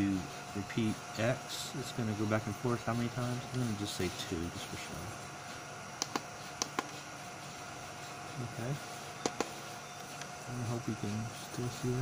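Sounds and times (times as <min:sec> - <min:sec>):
steady faint hum: 0:00.0 - 0:12.0.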